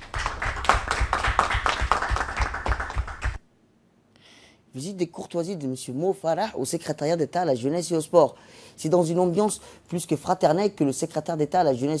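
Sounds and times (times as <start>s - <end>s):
people applauding: 0.0s - 3.4s.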